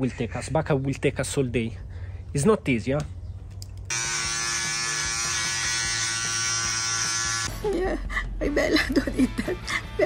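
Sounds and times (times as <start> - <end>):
electric shaver buzzing: 3.9 - 7.6.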